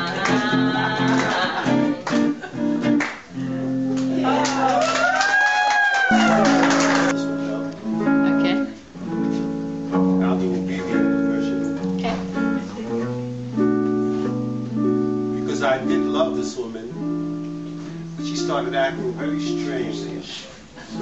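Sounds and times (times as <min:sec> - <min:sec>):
guitar chords ringing: 0:00.0 - 0:04.8, 0:06.1 - 0:21.0.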